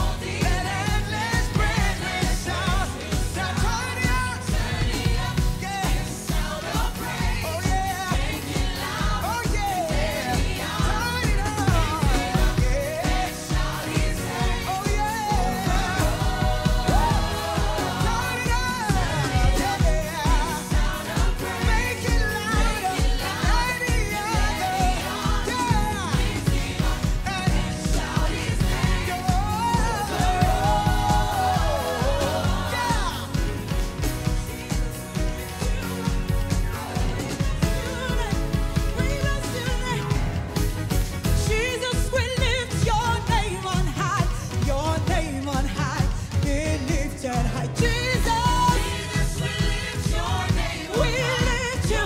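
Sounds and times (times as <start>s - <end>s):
band with steady drum beat: 0.0s - 52.0s
group singing gospel: 0.0s - 52.0s.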